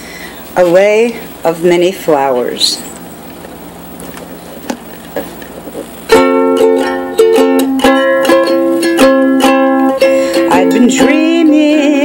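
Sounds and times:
room hiss: 0.0 - 12.0
ukulele strumming chords: 5.7 - 12.0.

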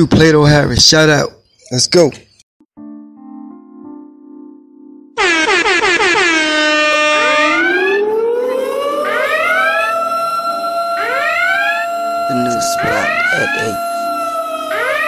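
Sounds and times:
electronic siren sound effect: 5.2 - 15.0.

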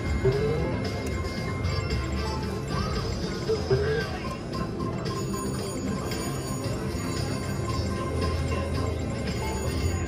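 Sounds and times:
gaming machine chimes and jingles: 0.0 - 3.7, 4.4 - 10.0.

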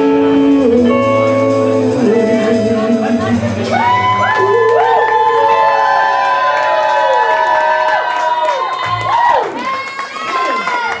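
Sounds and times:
rock band song: 0.0 - 6.6
crowd cheering and whooping: 3.6 - 11.0.

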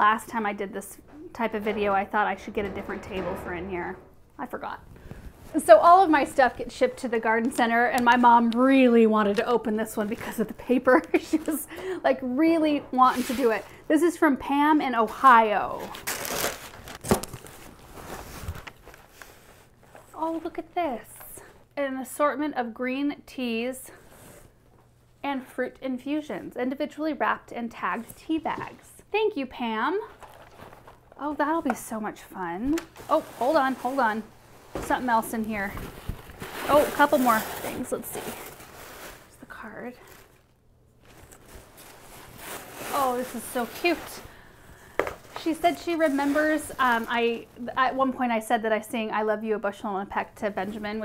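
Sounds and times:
tissue paper rustling: 13.0 - 13.7, 15.0 - 20.2, 30.1 - 31.1, 32.9 - 44.4, 45.2 - 47.7.

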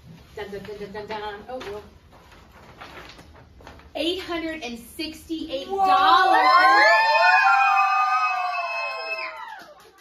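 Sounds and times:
children cheering: 5.9 - 10.0.

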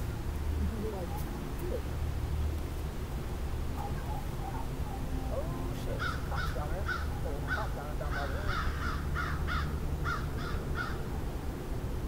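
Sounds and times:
bird calling: 3.8 - 11.2.

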